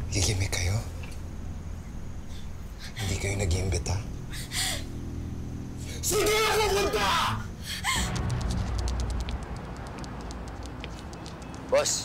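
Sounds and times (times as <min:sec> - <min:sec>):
man shouting: 0:06.0 - 0:07.5
low rumble: 0:07.2 - 0:11.2.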